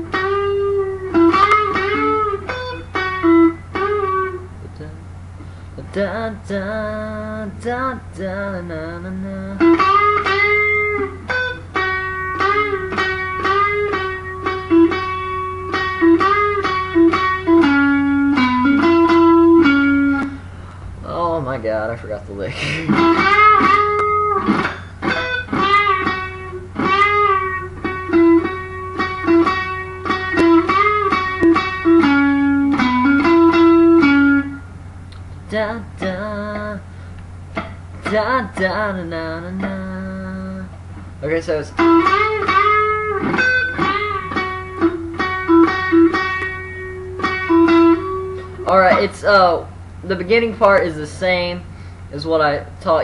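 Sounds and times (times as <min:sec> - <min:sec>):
electric guitar country lick: 0:00.0 - 0:04.8, 0:09.1 - 0:20.7, 0:22.5 - 0:51.0
low amp hum: 0:00.0 - 0:53.0.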